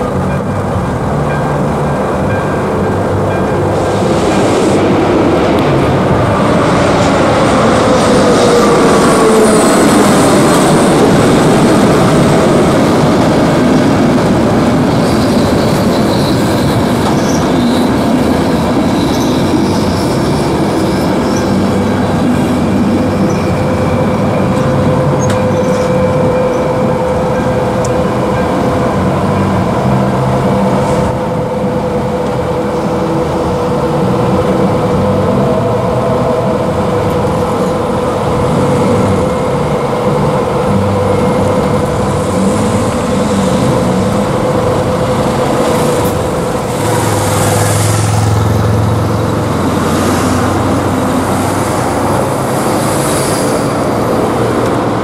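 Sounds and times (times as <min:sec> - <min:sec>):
crossing warning bell ringing: 0:00.0 - 0:04.5, 0:07.1 - 0:55.0
train wheels on rails: 0:00.0 - 0:55.0.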